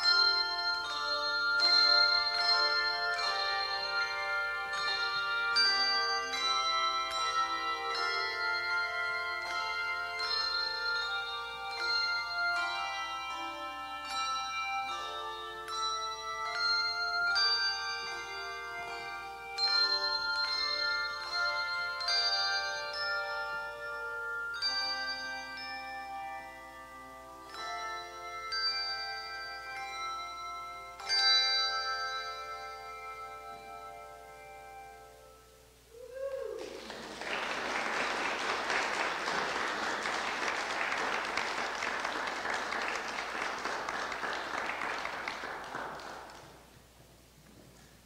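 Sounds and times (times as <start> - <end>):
handbell choir playing: 0.0 - 35.8, 36.8 - 46.7.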